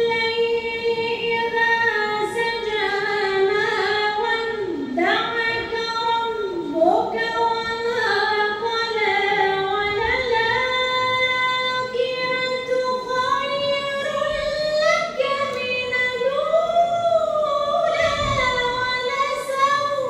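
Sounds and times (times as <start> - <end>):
woman reciting melodically: 0.0 - 20.0.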